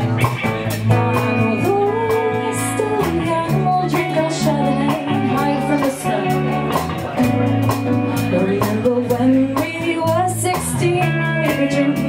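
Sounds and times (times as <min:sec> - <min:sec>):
live rock band playing: 0:00.0 - 0:12.0
woman singing: 0:00.9 - 0:06.8, 0:08.2 - 0:12.0.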